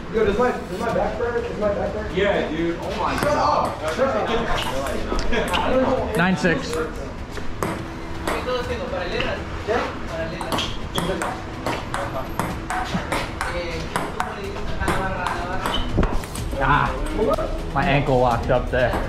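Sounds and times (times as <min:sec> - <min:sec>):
ping pong ball clicking: 0:07.6 - 0:08.6, 0:10.4 - 0:16.2.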